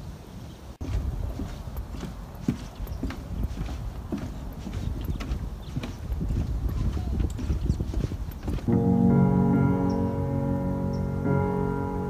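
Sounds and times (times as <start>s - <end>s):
irregular knocks and clicks: 0.9s - 8.8s
music: 8.7s - 12.0s.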